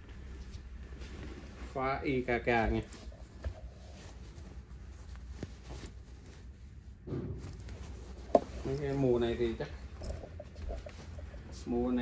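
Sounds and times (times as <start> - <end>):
fabric rustling: 0.0 - 12.0
low room hum: 0.0 - 12.0.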